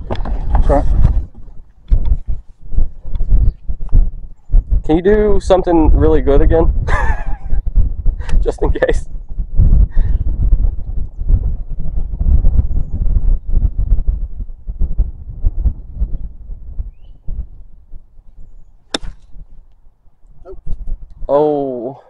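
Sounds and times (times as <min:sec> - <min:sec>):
loud low rumbling: 0:09.0 - 0:21.3
golf club striking ball: 0:18.9 - 0:19.8.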